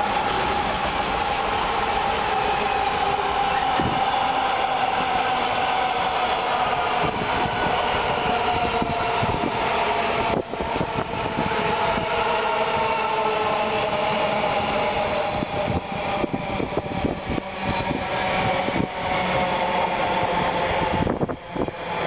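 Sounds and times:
freight train wheels on rail: 0:00.0 - 0:22.0
high tone sinking in pitch: 0:14.3 - 0:17.9.

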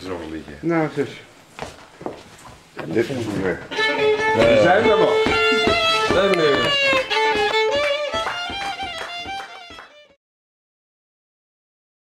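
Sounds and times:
violin melody: 0:03.3 - 0:10.2
plucked accompaniment notes: 0:03.7 - 0:10.2.

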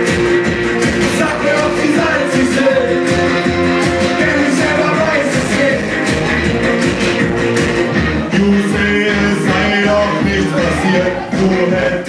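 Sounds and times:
person singing: 0:00.0 - 0:06.6, 0:07.9 - 0:12.0
electric guitar: 0:00.0 - 0:11.8
live rock music: 0:00.0 - 0:12.0.

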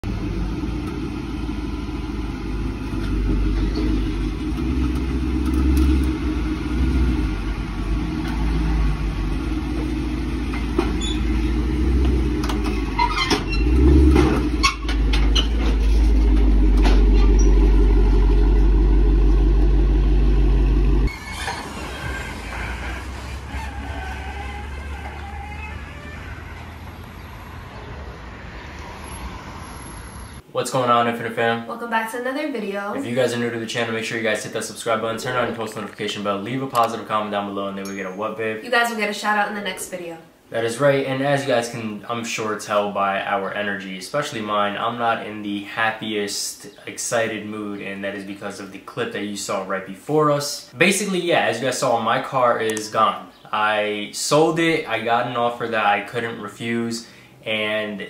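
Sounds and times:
vehicle engine running: 0:00.0 - 0:21.1
street traffic: 0:00.0 - 0:30.5, 0:56.6 - 0:57.8.

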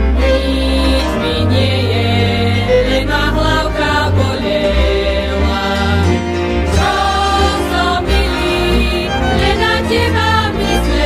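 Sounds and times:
bowed strings: 0:00.0 - 0:11.0
double bass line: 0:00.0 - 0:11.0
voices singing held notes: 0:00.0 - 0:11.0.

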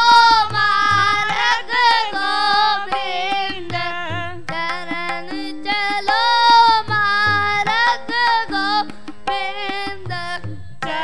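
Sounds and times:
harmonium: 0:00.0 - 0:11.0
light tabla strokes: 0:00.0 - 0:11.0.

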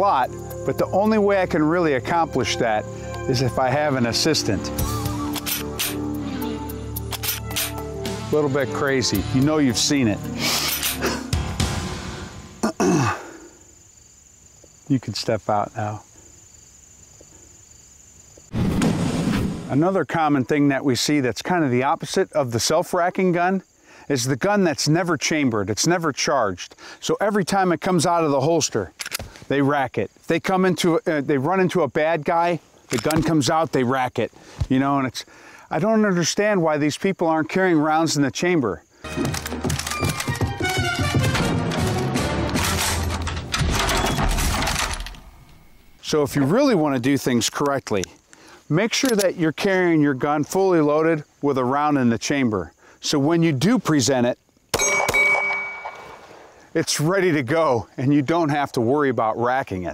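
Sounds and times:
crickets chirring: 0:00.0 - 0:41.0, 0:43.0 - 0:59.9
guns racking metallic clinking: 0:05.4 - 0:06.0, 0:07.1 - 0:07.8, 0:10.6 - 0:11.0, 0:32.9 - 0:33.3, 0:39.2 - 0:45.3.

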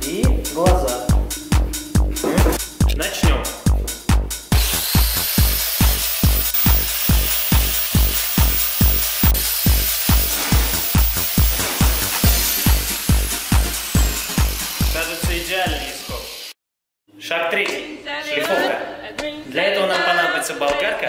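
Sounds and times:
steady kick drum: 0:00.0 - 0:04.7.

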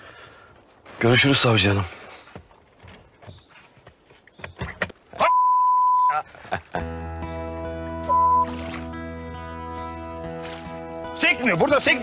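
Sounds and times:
loud electronic beep: 0:05.2 - 0:06.2, 0:08.1 - 0:08.6
music with long held chords: 0:06.8 - 0:12.0.

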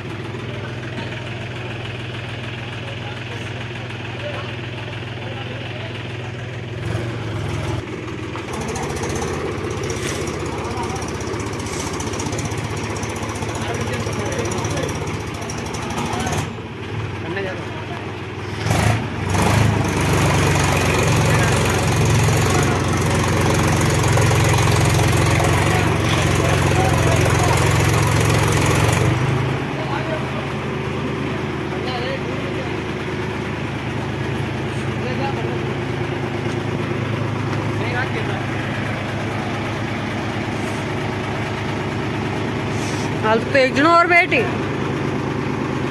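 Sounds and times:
tractor diesel engine running: 0:00.0 - 0:45.9.

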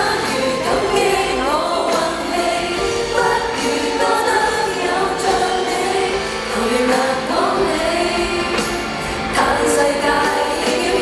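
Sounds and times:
band accompaniment: 0:00.0 - 0:11.0
female duo singing slow song: 0:00.0 - 0:11.0.

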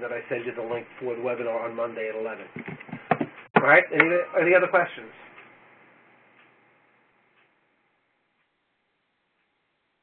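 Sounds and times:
soft ticks: 0:06.4 - 0:06.6, 0:07.3 - 0:07.6.

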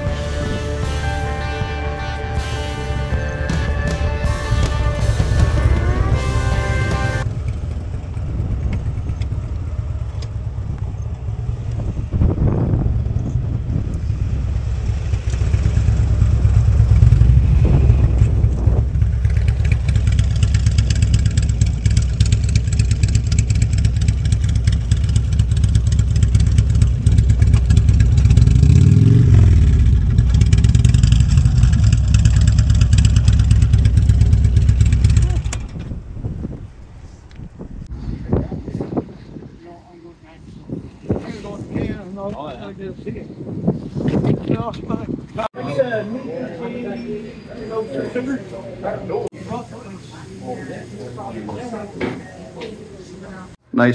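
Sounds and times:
background music: 0:00.0 - 0:07.3
motorcycle engines rumbling: 0:00.0 - 0:53.9
wind noise on microphone: 0:03.6 - 0:09.7, 0:10.5 - 0:21.8, 0:25.7 - 0:45.5.

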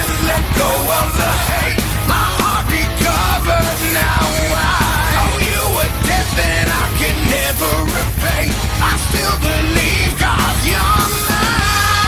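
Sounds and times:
drum kit playing: 0:00.0 - 0:12.0
heavy metal song: 0:00.0 - 0:12.0
man singing and yelling: 0:00.0 - 0:12.0.

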